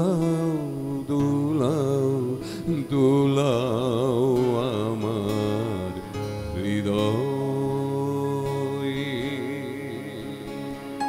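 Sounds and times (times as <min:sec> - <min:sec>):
acoustic guitar strumming: 0:00.0 - 0:11.0
person singing: 0:00.0 - 0:11.0.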